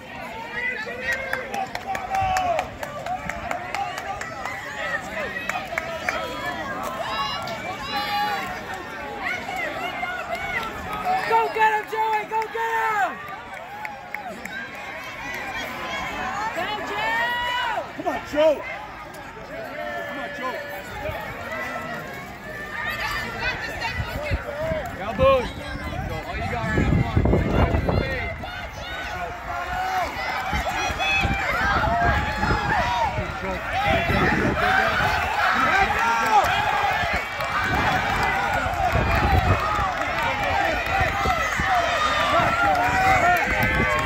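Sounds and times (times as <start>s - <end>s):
shouts of encouragement: 0.0s - 18.9s, 19.5s - 44.0s
crowd chatter: 0.0s - 44.0s
spectators talking and calling out: 0.0s - 44.0s.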